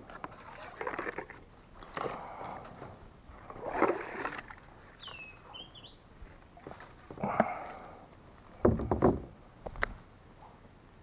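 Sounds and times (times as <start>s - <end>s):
water splashing: 0.2s - 2.7s, 3.3s - 5.1s
paddle knocking kayak hull: 8.6s - 9.4s.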